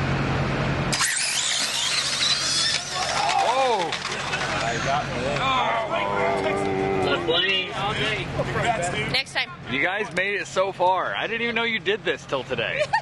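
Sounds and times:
electric toy car high-pitched whine: 0:00.9 - 0:05.0
people calling out: 0:02.6 - 0:04.0, 0:04.7 - 0:07.9.

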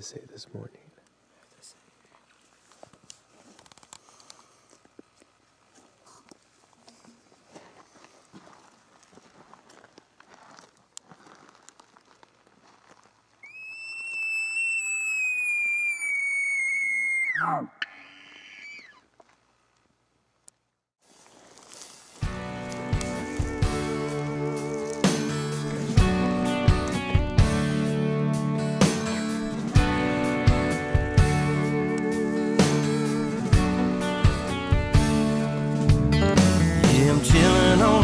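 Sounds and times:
faint rustling: 0:01.3 - 0:13.4
elk bugling: 0:13.4 - 0:19.3, 0:22.4 - 0:36.8
country music with guitar: 0:22.2 - 0:38.0.

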